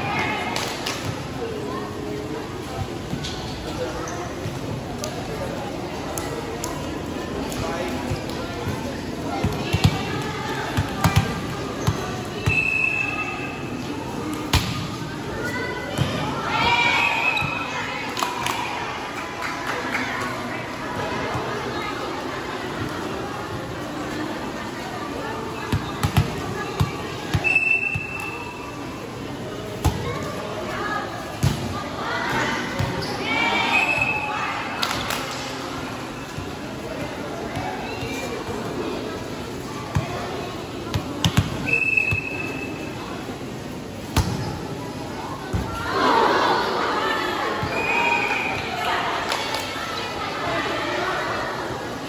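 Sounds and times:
spectator chatter and shouts: 0.0s - 52.0s.

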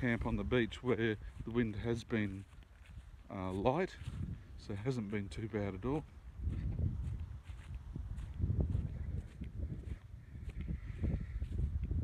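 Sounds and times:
footsteps on grass: 0.0s - 12.0s
wind rumble on microphone: 0.0s - 12.0s.

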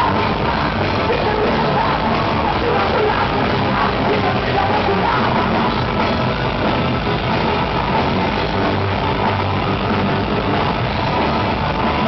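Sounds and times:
rock band with distorted guitars: 0.0s - 12.0s.

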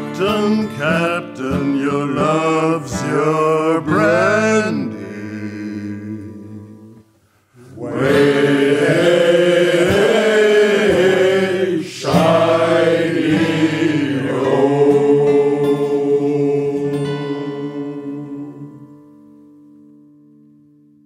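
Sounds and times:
men singing in chorus: 0.8s - 6.9s, 7.6s - 18.8s.

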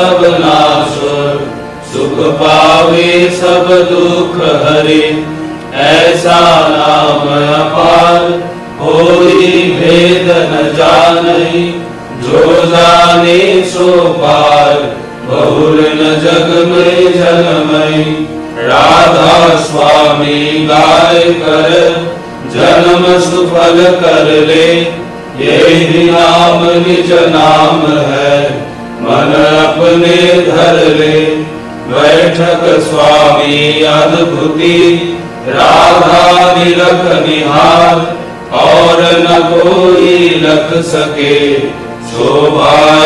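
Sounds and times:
slow devotional hymn singing: 0.0s - 43.0s.

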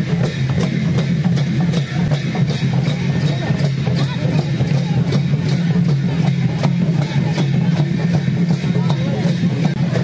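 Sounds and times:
cymbals keeping steady beat: 0.0s - 10.0s
dhol drums playing dance music: 0.0s - 10.0s.

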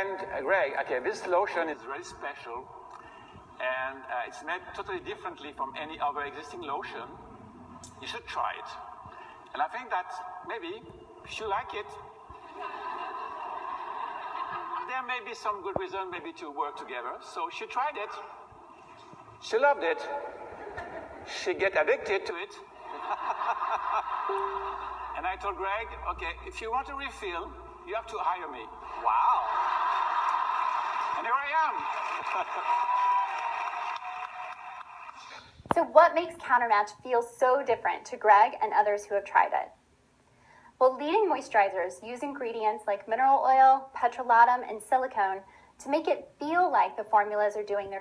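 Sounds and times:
audience laughter through speakers: 12.4s - 14.9s, 22.8s - 25.3s
audience applause: 28.8s - 35.3s.

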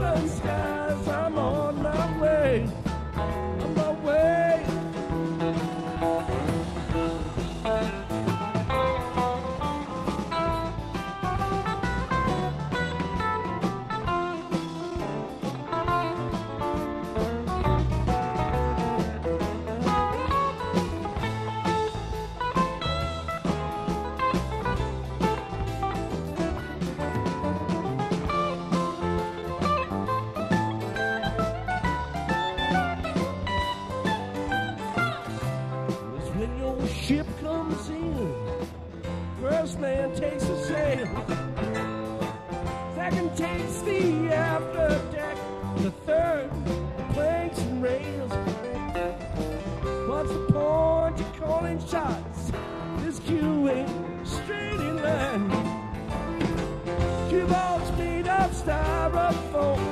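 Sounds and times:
electric guitar lead line: 0.0s - 59.9s
live rock band playing: 0.0s - 59.9s.

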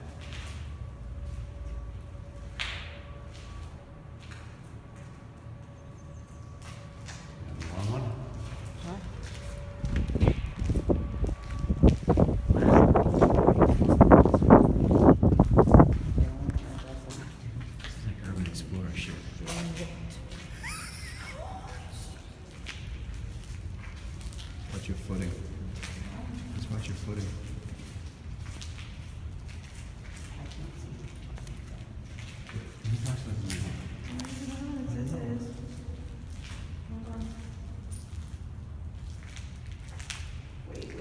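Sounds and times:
low rumble: 0.0s - 20.5s
person's high wavering voice: 20.6s - 22.2s.

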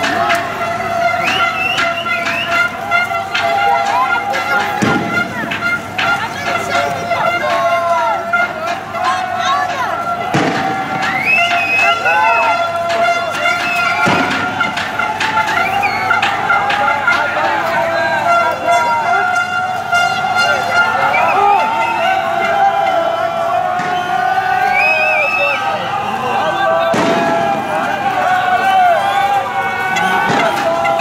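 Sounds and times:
crowd shouting: 0.0s - 31.0s
sharp bang: 4.6s - 6.2s, 10.3s - 16.8s, 26.9s - 27.8s
sharp cracks: 26.9s - 27.6s.

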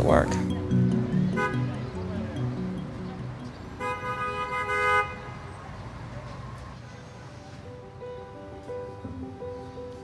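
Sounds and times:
street traffic rumble: 0.0s - 10.0s
vehicle horn honking: 1.3s - 1.9s, 3.8s - 5.4s.

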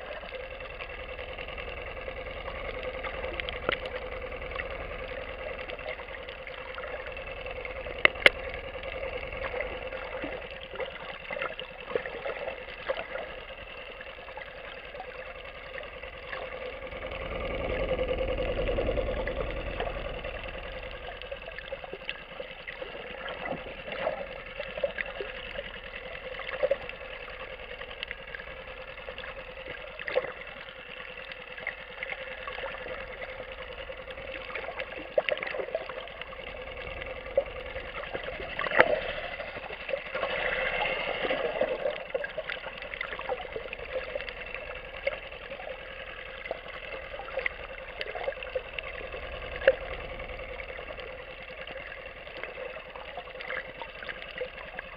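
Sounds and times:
distant motorboat engine underwater: 0.0s - 54.9s
small clicks and crackles: 0.0s - 54.9s.

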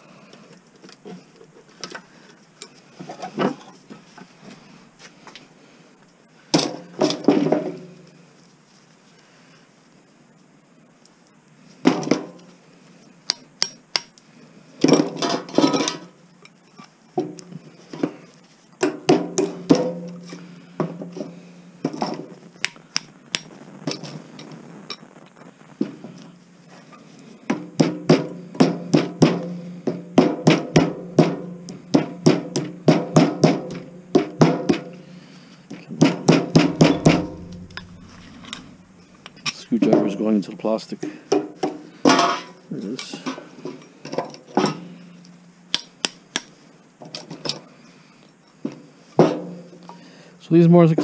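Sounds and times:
hammer striking metal punch: 36.0s - 39.4s.

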